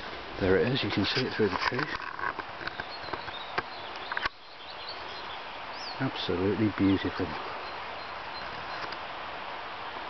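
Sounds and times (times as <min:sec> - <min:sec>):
steady outdoor hiss: 0:00.0 - 0:10.0
faint high bird chirps: 0:02.7 - 0:06.2.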